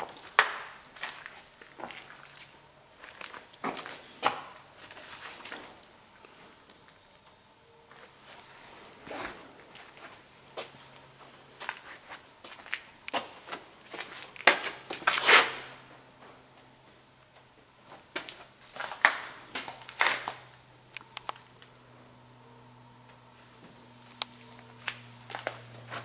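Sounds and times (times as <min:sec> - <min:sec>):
rustles scuffs and crackles: 0:00.0 - 0:06.7, 0:07.8 - 0:16.4, 0:23.4 - 0:26.0.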